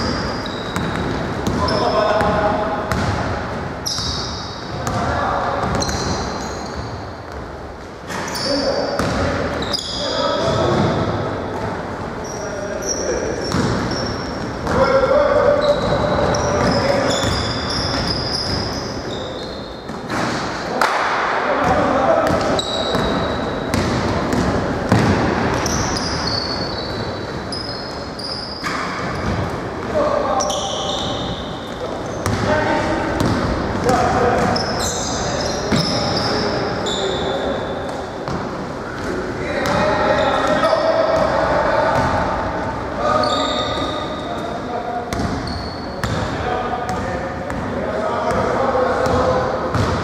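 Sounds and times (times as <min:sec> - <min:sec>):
basketball bouncing on wooden court: 0:00.0 - 0:07.4, 0:09.0 - 0:09.7, 0:10.6 - 0:11.7, 0:13.4 - 0:14.8, 0:15.6 - 0:18.8, 0:21.6 - 0:27.0, 0:30.9 - 0:32.5, 0:33.1 - 0:35.1, 0:39.0 - 0:39.8, 0:40.4 - 0:42.2, 0:45.1 - 0:47.7, 0:48.3 - 0:50.0
sneakers squeaking: 0:00.0 - 0:50.0.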